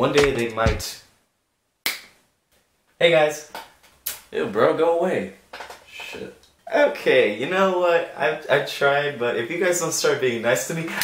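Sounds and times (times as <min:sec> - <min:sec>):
finger snap: 0:01.8 - 0:02.2.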